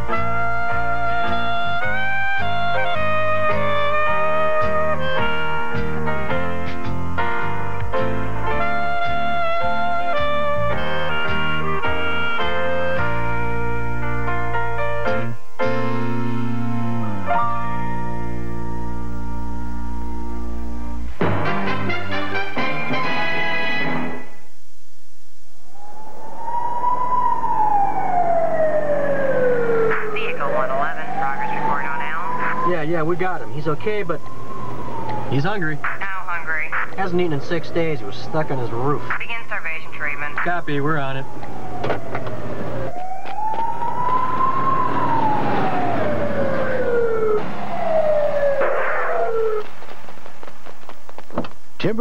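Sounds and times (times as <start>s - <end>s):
ambulance siren wailing: 0.0s - 15.8s, 25.7s - 49.8s
orchestral music: 0.0s - 24.3s.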